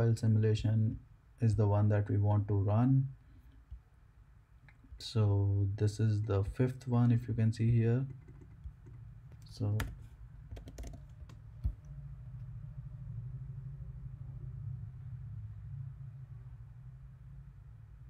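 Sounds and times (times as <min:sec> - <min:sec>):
low background hum: 0:00.0 - 0:18.0
keyboard key presses: 0:08.1 - 0:11.9.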